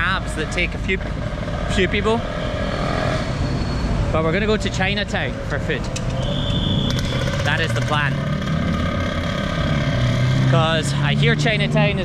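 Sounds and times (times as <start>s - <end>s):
motorcycle engine: 0.0s - 12.0s
road traffic passing: 0.0s - 12.0s.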